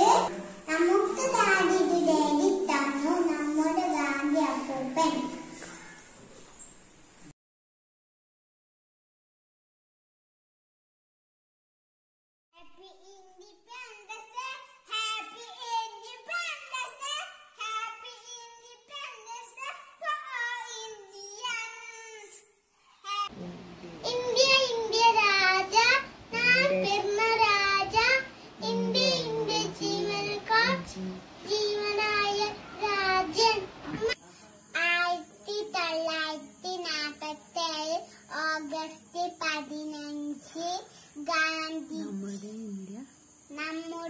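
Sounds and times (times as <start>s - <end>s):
faint steady hiss: 0.0s - 7.3s, 12.8s - 44.0s
boy singing: 24.0s - 33.8s.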